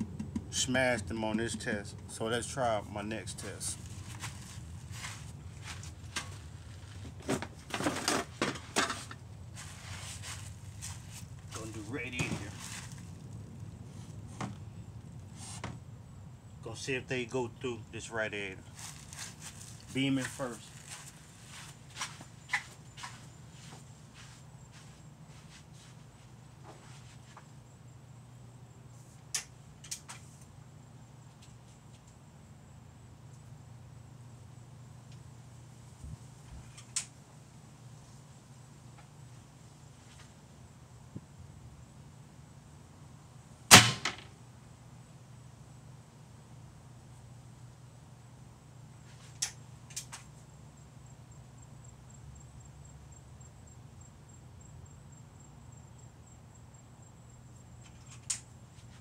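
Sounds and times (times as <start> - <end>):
steady low hum: 0.0 - 59.0
airgun shot hitting metal: 43.7 - 44.3.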